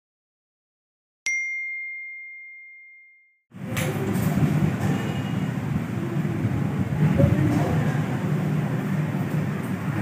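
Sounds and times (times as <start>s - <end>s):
high bell-like chime: 1.3s - 3.4s.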